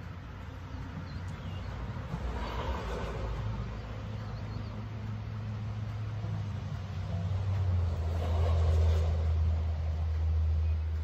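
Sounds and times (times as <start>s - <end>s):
rushing noise: 1.5s - 10.6s.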